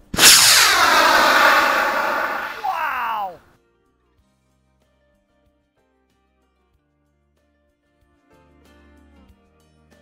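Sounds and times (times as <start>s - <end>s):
rocket motor roaring: 0.0s - 3.4s.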